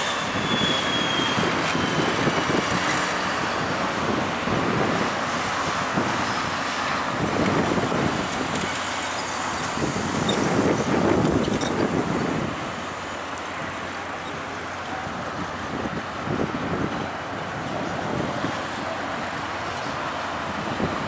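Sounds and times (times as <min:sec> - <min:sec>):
cars passing: 0:00.0 - 0:21.0
road noise: 0:00.0 - 0:21.0.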